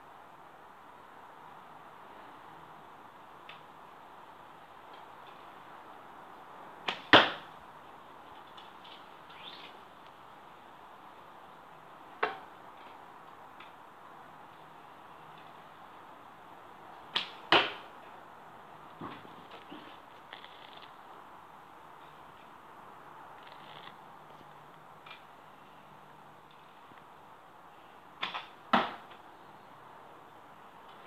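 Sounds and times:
arrow hitting cardboard target: 0:06.9 - 0:07.5, 0:17.2 - 0:17.9, 0:28.2 - 0:29.1.

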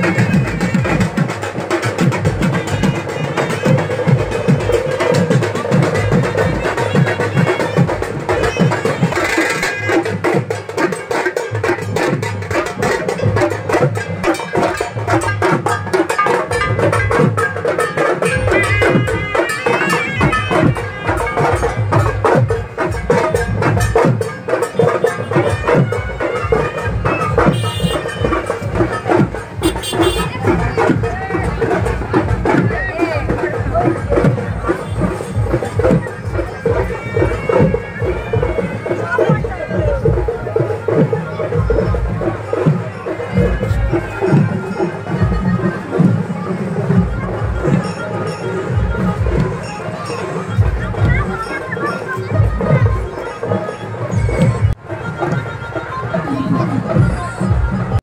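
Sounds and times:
drums beating fast rhythm: 0:00.0 - 0:58.0.

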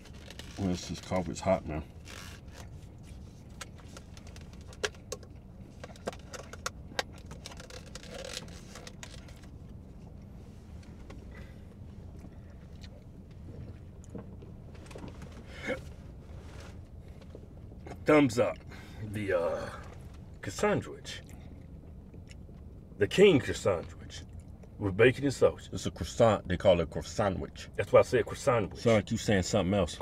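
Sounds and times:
car cabin hum: 0:00.0 - 0:30.0
paper cup clicks and rustles: 0:03.6 - 0:09.5.

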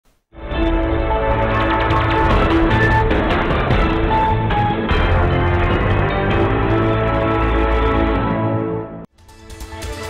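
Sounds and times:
orchestral-electronic theme music: 0:00.4 - 0:10.0.

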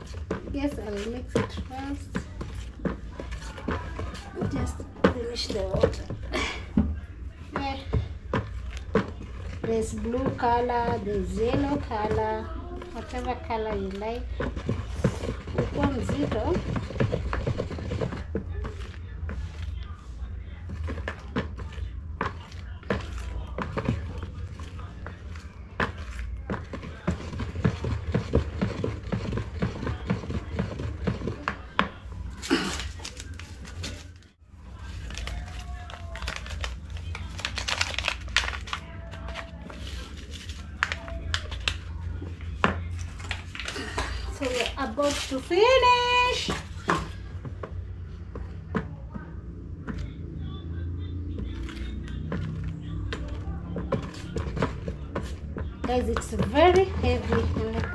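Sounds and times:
stick knocking and scraping basin: 0:13.0 - 0:19.4, 0:25.8 - 0:32.0.

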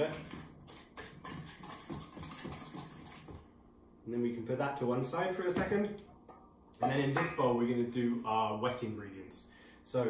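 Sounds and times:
whisk scraping metal bowl: 0:00.0 - 0:03.4.

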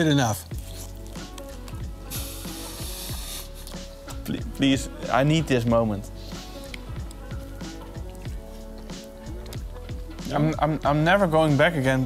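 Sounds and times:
background music with a beat: 0:00.4 - 0:12.0.

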